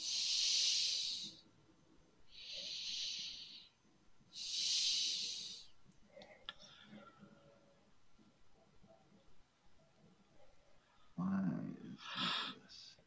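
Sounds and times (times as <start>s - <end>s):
person breathing close to microphone: 0.0s - 1.4s, 2.3s - 3.7s, 4.3s - 5.8s.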